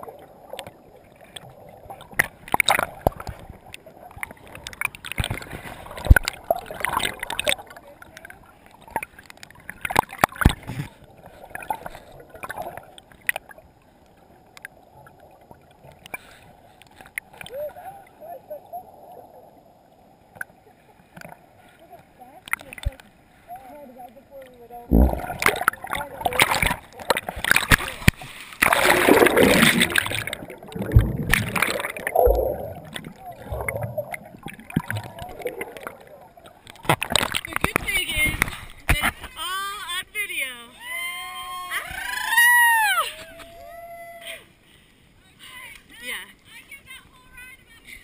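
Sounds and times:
water splashing: 0:00.0 - 0:40.7
muffled churning water: 0:00.0 - 0:48.0
underwater knocks: 0:24.9 - 0:39.2.

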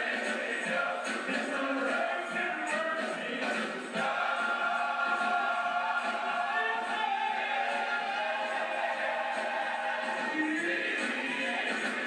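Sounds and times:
men's choir singing in harmony: 0:00.0 - 0:12.0.

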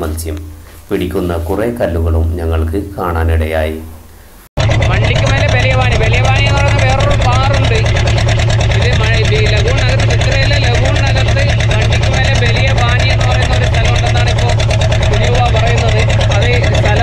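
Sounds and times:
boat engine running: 0:04.6 - 0:17.0
people's voices: 0:04.8 - 0:17.0.

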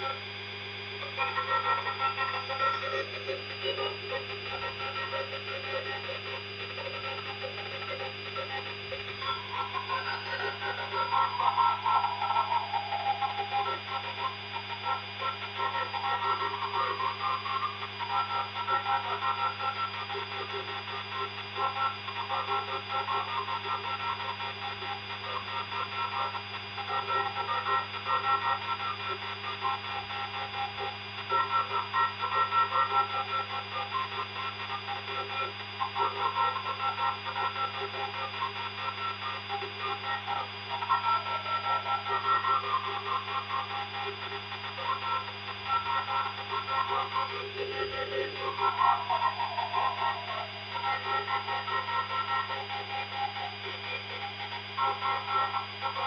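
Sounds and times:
steady machine hum: 0:00.0 - 0:56.0
wavering mid-pitched whine: 0:00.0 - 0:56.0.

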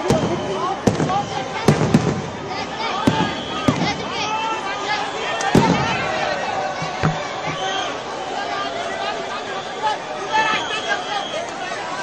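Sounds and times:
fireworks bangs: 0:00.0 - 0:04.2, 0:05.4 - 0:07.8.

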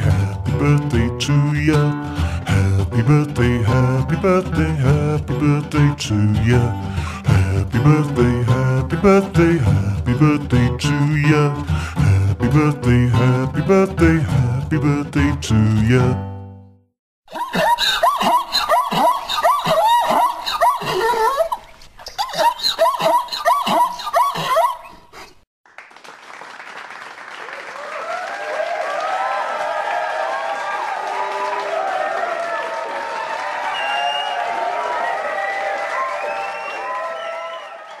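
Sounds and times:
donkey braying: 0:17.4 - 0:21.6, 0:22.2 - 0:25.3
crowd applauding: 0:25.7 - 0:38.0.

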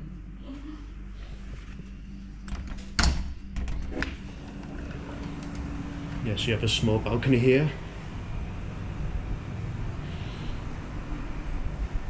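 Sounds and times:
low urban background hum: 0:00.0 - 0:12.0.

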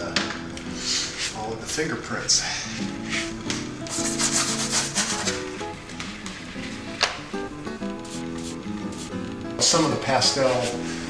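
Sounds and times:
background music: 0:00.0 - 0:11.0
pastel rubbed on paper: 0:03.0 - 0:03.3, 0:03.9 - 0:05.5, 0:07.8 - 0:09.2.

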